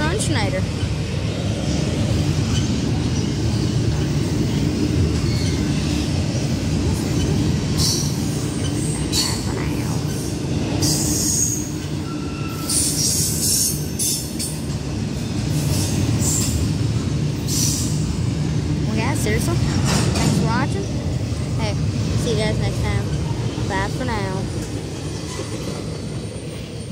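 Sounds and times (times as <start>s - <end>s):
train wheels rumbling on rail: 0.0s - 26.9s
wheels screeching: 1.8s - 14.6s.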